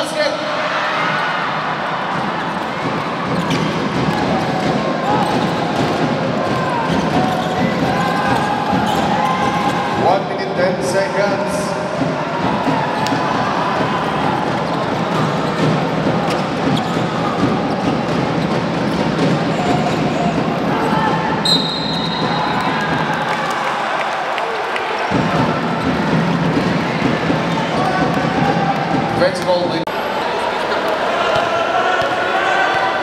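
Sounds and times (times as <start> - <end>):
crowd chatter: 0.0 - 33.0
sneakers squeaking: 2.1 - 9.8, 12.0 - 23.2
short high whistle blast: 21.4 - 22.6.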